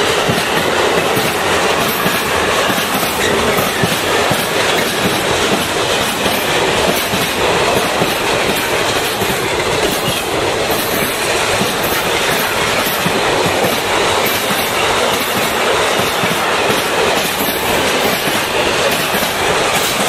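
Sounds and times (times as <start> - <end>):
train wheels rolling on rails: 0.0 - 20.0.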